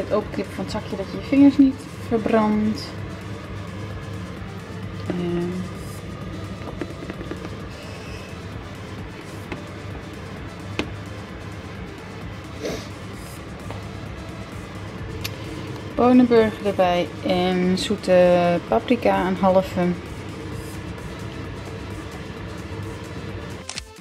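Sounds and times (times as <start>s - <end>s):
background music: 0.0s - 24.0s.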